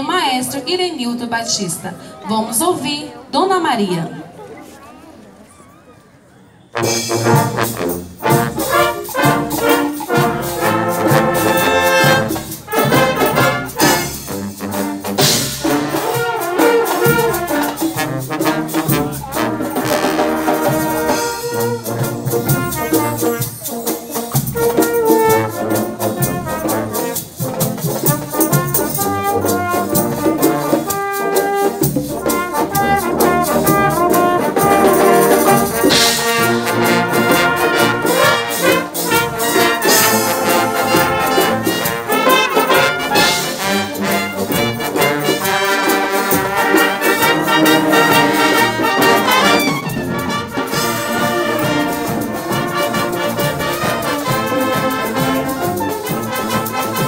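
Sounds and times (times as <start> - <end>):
brass band playing popular song: 6.7 - 57.0.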